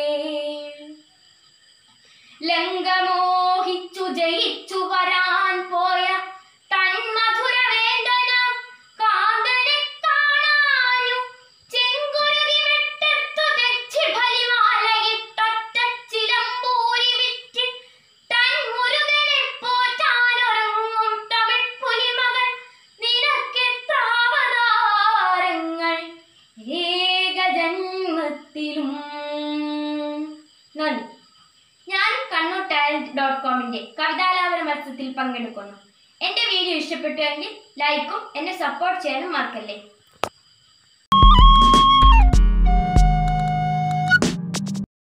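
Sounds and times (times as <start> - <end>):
girl chanting a melody: 0.0 - 1.1, 2.4 - 31.2, 31.9 - 39.9.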